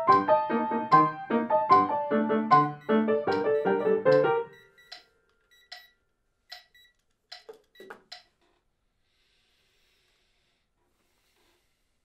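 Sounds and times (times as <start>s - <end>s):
metronome electronic beeps: 2.5s - 8.0s.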